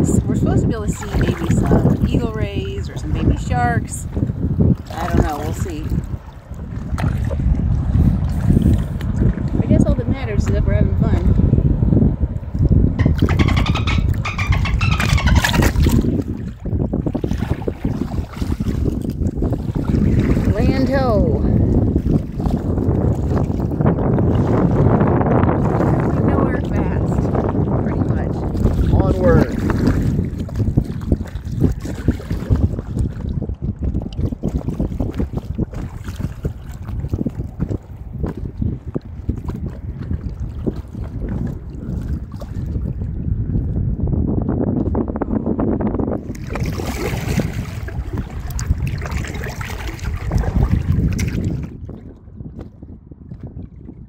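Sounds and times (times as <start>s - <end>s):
kayak paddling in water: 0.0s - 54.0s
wind buffeting microphone: 0.0s - 54.0s.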